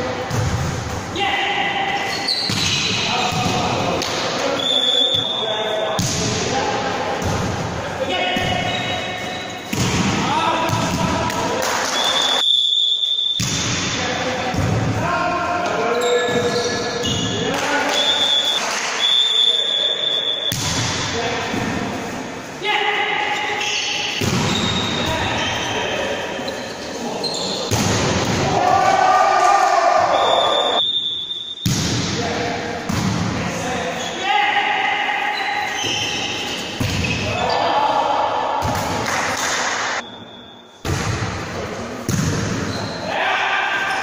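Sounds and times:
referee's whistle blasts: 4.6s - 5.5s, 12.0s - 13.5s, 16.0s - 20.6s, 30.1s - 31.8s, 40.0s - 40.8s
players shouting in hall: 28.4s - 30.8s, 43.0s - 44.0s.

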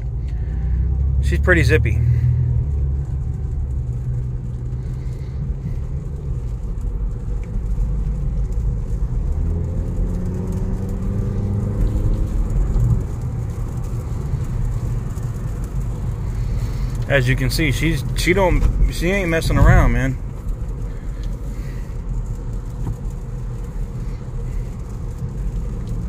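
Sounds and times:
car engine accelerating: 0.0s - 26.0s
road noise: 0.0s - 26.0s.

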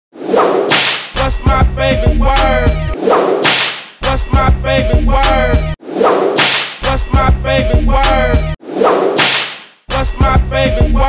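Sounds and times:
whip-crack swishes: 0.2s - 1.2s, 3.0s - 4.0s, 5.9s - 6.8s, 8.7s - 9.8s
hip hop beat with heavy bass: 1.1s - 3.0s, 3.9s - 5.8s, 6.7s - 8.6s, 9.9s - 11.0s
rapped vocal: 1.2s - 3.0s, 4.0s - 5.8s, 6.8s - 8.6s, 9.9s - 11.0s.

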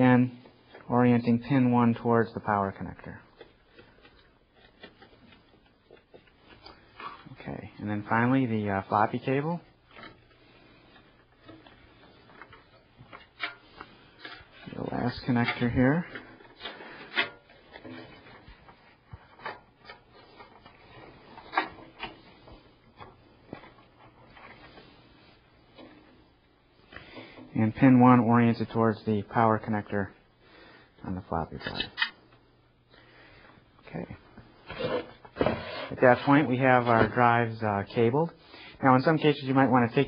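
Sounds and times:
cable rustling: 2.8s - 27.6s.

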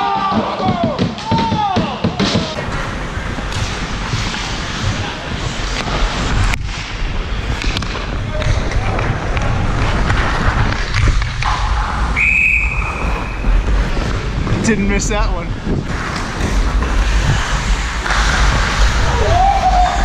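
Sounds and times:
hockey sticks and puck clacking: 0.0s - 14.7s, 15.8s - 20.0s
skates scraping on ice: 2.2s - 20.0s
wind rushing over microphone: 2.9s - 20.0s
whistle: 12.2s - 13.4s.

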